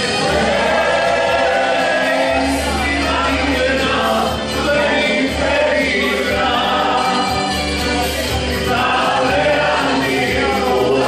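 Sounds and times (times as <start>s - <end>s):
group of men singing: 0.0s - 11.0s.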